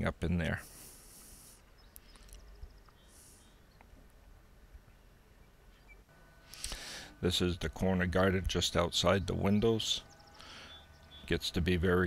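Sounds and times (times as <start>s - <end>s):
faint high bird chirps: 1.6s - 4.0s, 4.8s - 6.1s, 9.0s - 11.5s.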